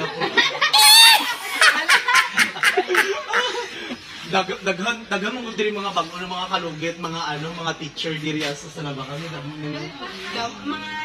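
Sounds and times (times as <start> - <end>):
people laughing: 0.0 - 4.0.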